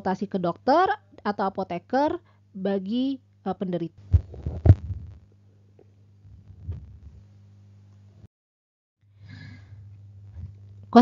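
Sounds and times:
low electrical hum: 0.0s - 8.3s, 9.0s - 11.0s
dull low thumps: 4.1s - 5.3s, 6.3s - 7.3s.

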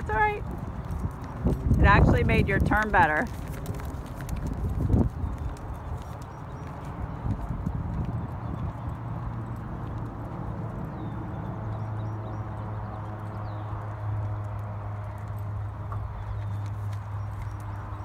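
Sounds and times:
horse hoofbeats on sand: 0.0s - 18.0s.

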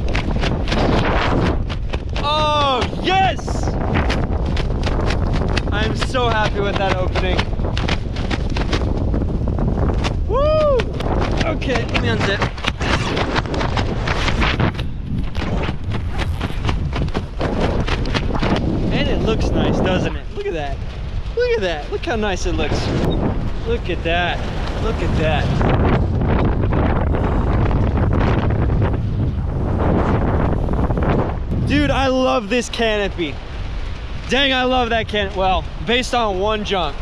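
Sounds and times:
wind buffeting microphone: 0.0s - 37.0s
zipper clicks and rasps: 11.0s - 18.6s.

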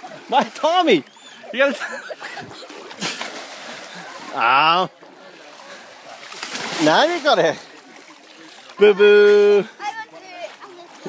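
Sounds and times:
feet splashing through water: 0.0s - 11.0s.

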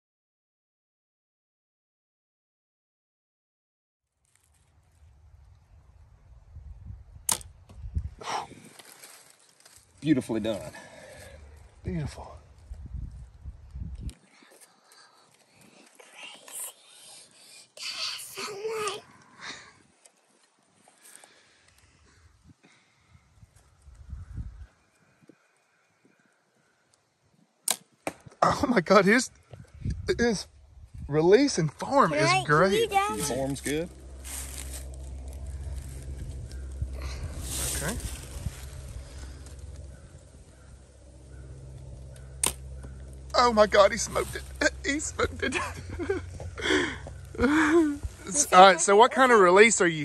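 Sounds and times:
arrow striking target: 7.3s - 7.5s, 27.7s - 28.3s, 42.4s - 42.6s
bow release click: 7.3s - 7.5s, 42.2s - 43.0s
bowstring snap: 7.3s - 7.5s, 42.4s - 42.6s.

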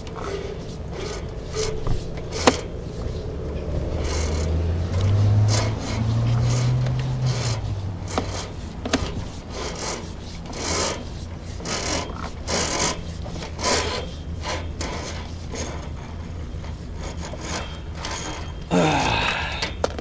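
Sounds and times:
cable scraping through drain: 0.0s - 18.7s
low hum: 0.0s - 19.7s.

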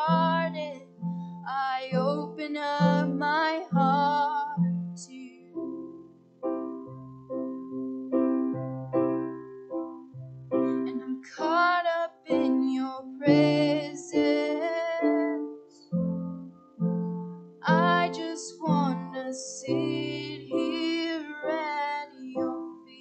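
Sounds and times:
person singing: 0.0s - 5.9s, 10.6s - 16.2s, 17.6s - 23.0s.

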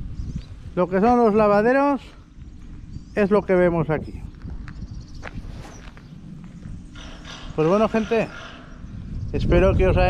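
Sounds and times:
footsteps on gravel: 2.1s - 3.1s, 4.1s - 7.8s.

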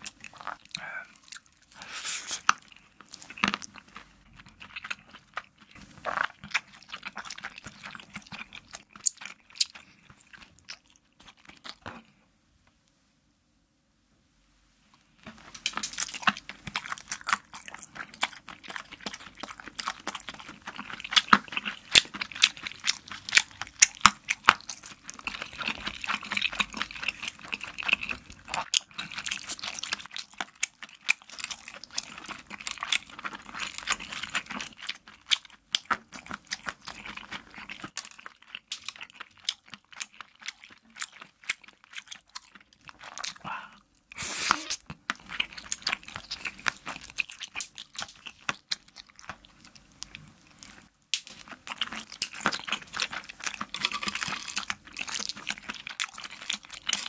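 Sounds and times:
sticky wet chewing: 0.0s - 12.1s, 15.3s - 57.0s.

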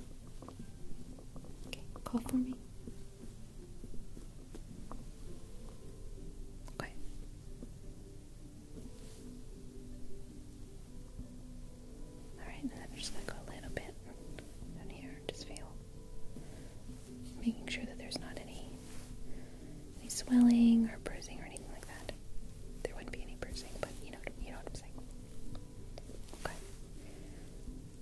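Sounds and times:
person whispering: 1.7s - 2.6s, 6.7s - 7.2s, 12.4s - 14.2s, 14.8s - 15.8s, 17.4s - 19.0s, 20.0s - 22.2s, 22.8s - 25.1s, 26.3s - 26.8s.

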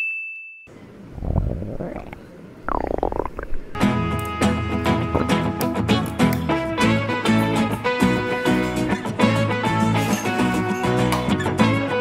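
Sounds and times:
stomach growling: 1.1s - 3.8s, 5.0s - 5.6s
guitar music: 3.8s - 12.0s.

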